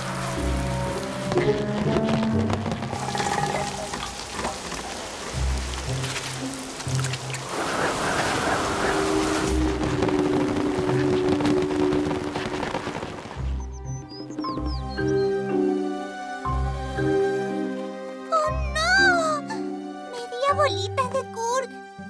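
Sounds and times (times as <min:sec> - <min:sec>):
falling rain: 0:00.0 - 0:14.0, 0:15.4 - 0:20.5
background music: 0:00.0 - 0:22.0.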